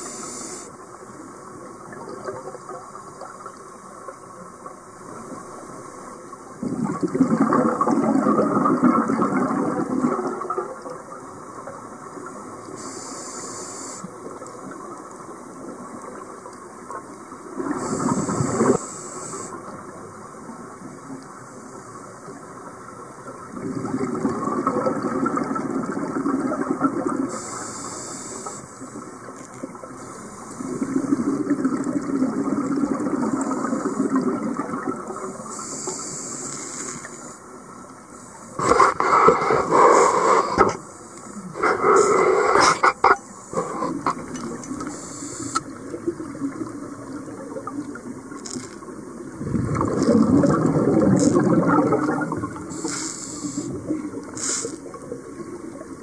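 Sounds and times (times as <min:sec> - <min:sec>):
diver breathing through regulator: 0:35.5 - 0:37.4, 0:38.6 - 0:44.2, 0:52.7 - 0:54.8.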